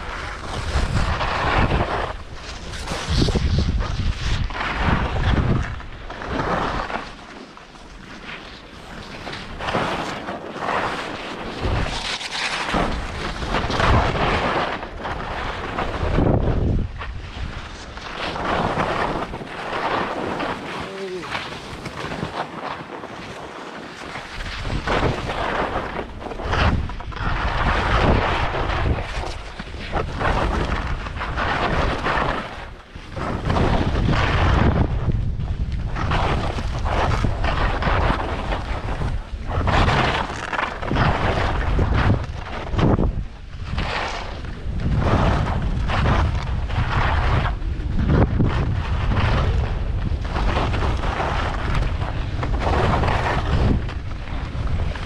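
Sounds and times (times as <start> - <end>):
wind buffeting microphone: 0.0 - 7.2, 8.8 - 55.0
skis scraping over snow: 0.0 - 55.0.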